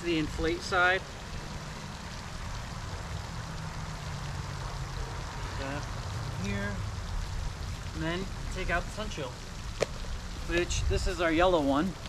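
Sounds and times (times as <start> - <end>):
pond fountain splashing: 0.0 - 12.0.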